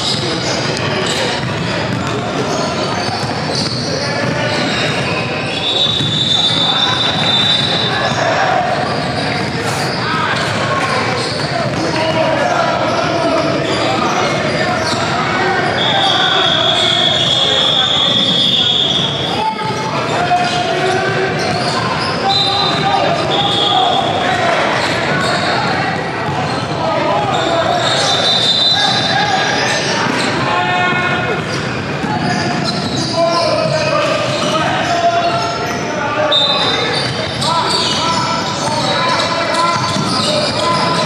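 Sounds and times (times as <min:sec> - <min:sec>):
voices of players and spectators: 0:00.0 - 0:41.0
ball bouncing on hardwood court: 0:01.3 - 0:05.2, 0:05.9 - 0:07.8, 0:10.3 - 0:12.0.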